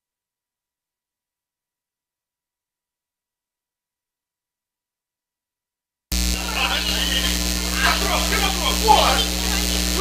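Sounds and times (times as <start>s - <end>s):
electrical mains hum: 6.1s - 10.0s
faint voices: 6.2s - 10.0s.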